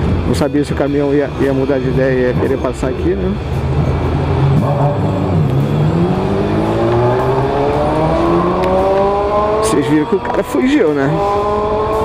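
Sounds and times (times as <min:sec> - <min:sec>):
motorcycle engine revving up: 0:03.9 - 0:12.0.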